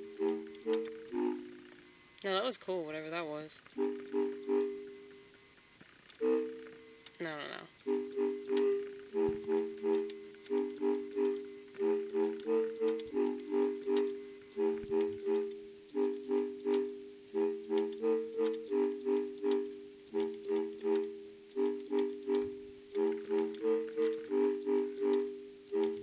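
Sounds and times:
keyboard chords played by hand: 0.0s - 2.0s, 3.7s - 5.2s, 6.2s - 7.1s, 7.8s - 26.0s.

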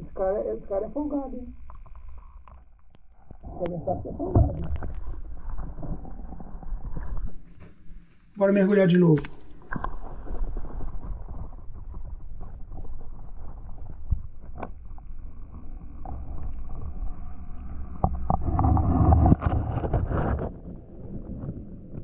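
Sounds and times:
muffled low rumble: 0.0s - 8.3s.

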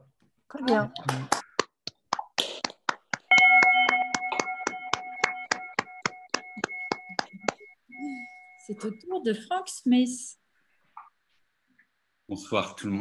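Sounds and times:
scattered hand claps: 0.6s - 7.8s
loud steady multi-pitch tone: 3.3s - 9.3s.

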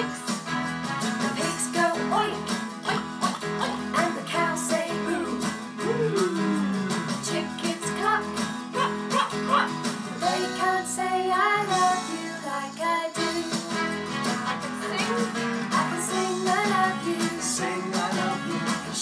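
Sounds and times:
guitar accompaniment: 0.0s - 19.0s
voices singing children's song: 1.0s - 19.0s.

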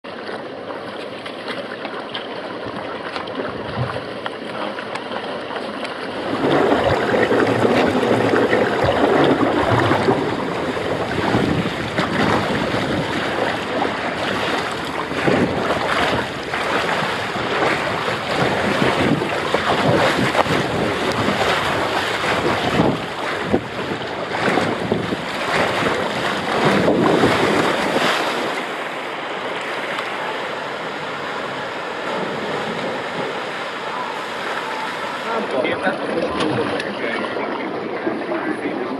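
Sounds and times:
rider sliding down water slide: 0.0s - 38.9s
rushing water: 0.0s - 38.9s
wind buffeting microphone: 6.1s - 29.2s.

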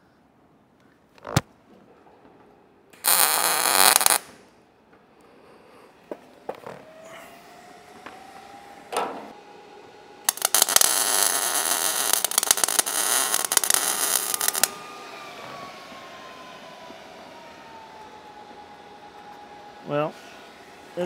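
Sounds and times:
electric arc welding crackle: 3.0s - 4.4s, 10.2s - 14.8s.

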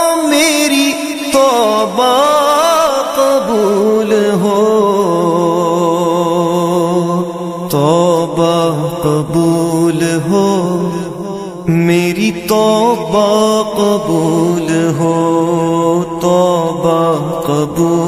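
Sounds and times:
man singing: 0.0s - 18.0s.

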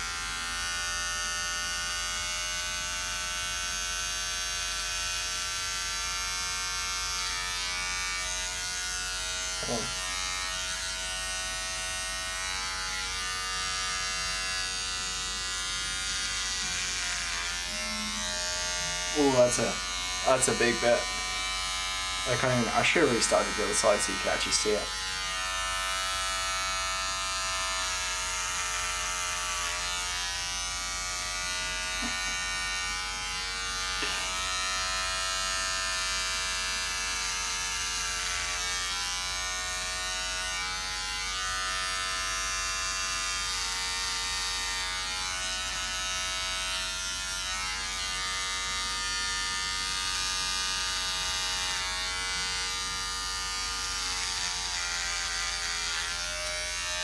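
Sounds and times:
electric beard trimmer buzzing: 0.0s - 57.0s.

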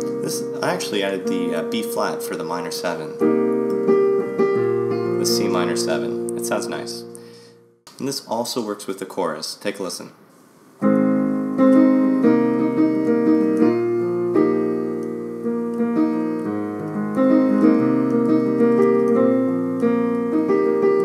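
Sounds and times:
piano chords: 0.0s - 7.8s, 10.8s - 21.0s.

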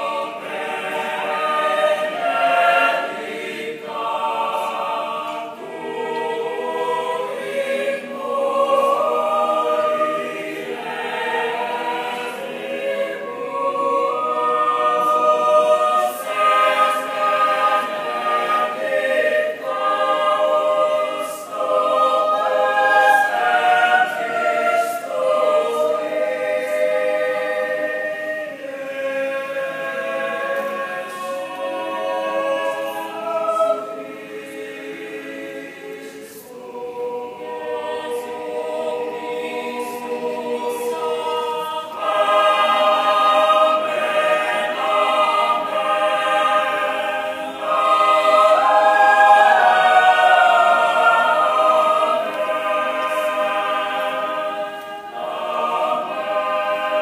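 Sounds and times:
mixed choir singing a cappella: 0.0s - 57.0s.

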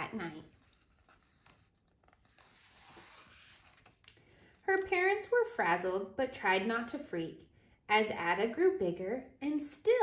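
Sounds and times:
paper page rustling: 0.0s - 4.9s.

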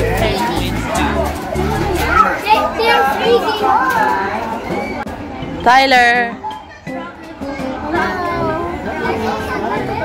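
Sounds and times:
children talking and calling: 0.0s - 10.0s.

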